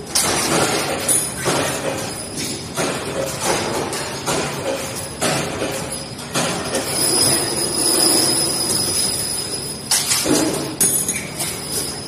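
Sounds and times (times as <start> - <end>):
machine high-pitched whine: 5.8 - 12.0.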